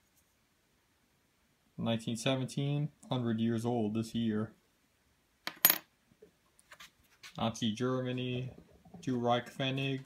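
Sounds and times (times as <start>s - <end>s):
metal coins clinking on a tray: 5.5s - 5.8s.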